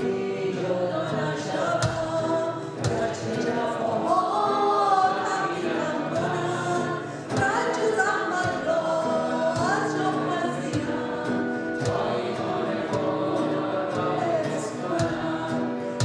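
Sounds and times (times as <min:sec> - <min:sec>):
electric and acoustic guitars: 0:00.0 - 0:16.0
woman singing: 0:00.0 - 0:16.0
drums: 0:01.8 - 0:03.3, 0:15.0 - 0:16.0.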